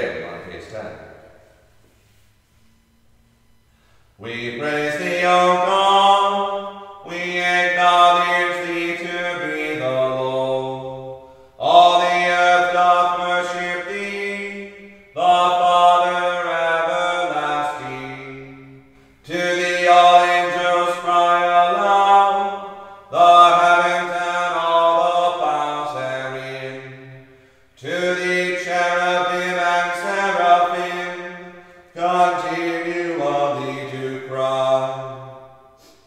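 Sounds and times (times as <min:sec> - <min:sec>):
choir chanting: 0:04.2 - 0:35.5.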